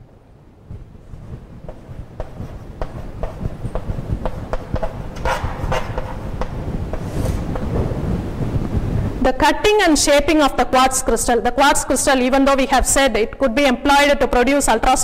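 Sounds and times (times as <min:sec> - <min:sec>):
low rumble: 0:00.0 - 0:09.3
chalk tapping and scraping: 0:01.1 - 0:07.7.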